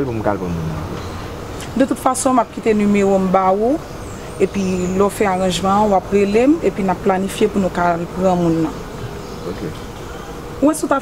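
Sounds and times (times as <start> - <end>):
person speaking: 0.0 - 1.0
insect buzzing: 0.0 - 11.0
outdoor background noise: 0.0 - 11.0.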